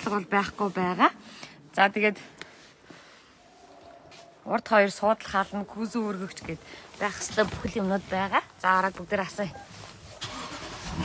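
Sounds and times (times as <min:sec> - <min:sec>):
car engine cranking and catching: 0:10.2 - 0:11.0.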